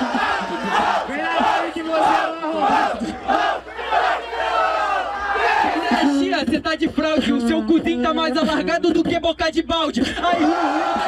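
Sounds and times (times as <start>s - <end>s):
crowd laughing: 0.0s - 3.6s, 5.3s - 7.4s, 10.0s - 11.0s
crowd shouting and whooping: 0.0s - 6.1s, 10.3s - 11.0s.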